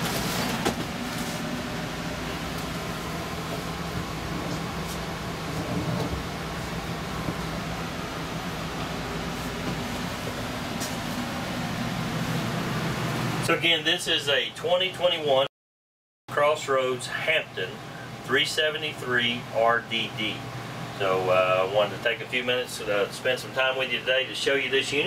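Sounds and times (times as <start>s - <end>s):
air conditioner humming: 0.0s - 15.5s, 16.3s - 25.0s.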